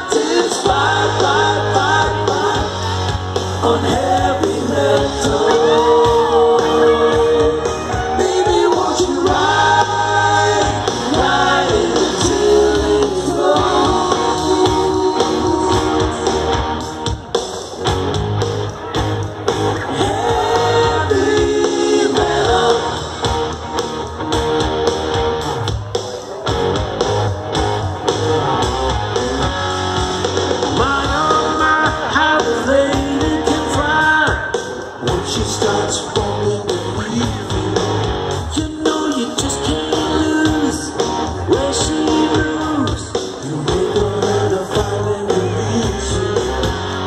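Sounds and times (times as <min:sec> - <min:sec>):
person singing: 0:00.0 - 0:16.6, 0:19.8 - 0:23.3, 0:30.7 - 0:46.8
live rock band: 0:00.0 - 0:47.0.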